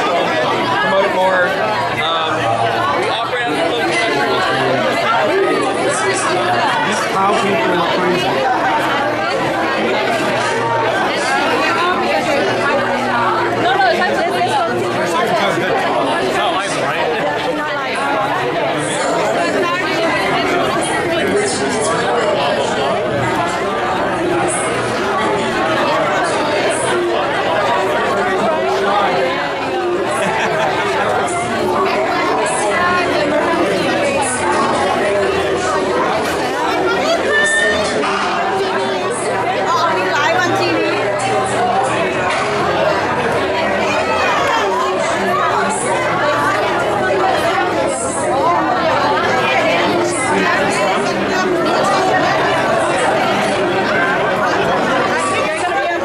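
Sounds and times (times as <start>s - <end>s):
crowd chatter: 0.0s - 56.0s.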